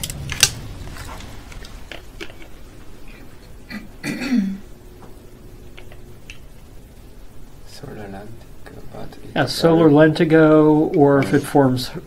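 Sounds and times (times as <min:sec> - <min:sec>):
person clearing throat: 0:03.7 - 0:04.7.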